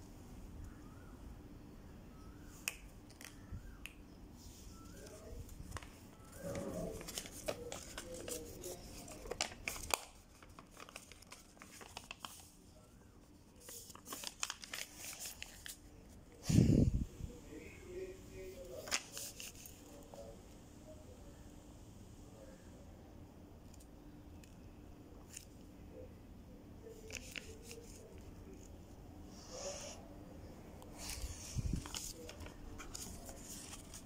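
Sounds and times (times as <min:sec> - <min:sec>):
paper rustling: 0:04.4 - 0:16.2, 0:18.7 - 0:20.3, 0:26.9 - 0:28.7, 0:30.8 - 0:34.0
paper crackling: 0:04.7 - 0:16.2, 0:18.6 - 0:20.2, 0:26.9 - 0:28.7, 0:30.8 - 0:34.0.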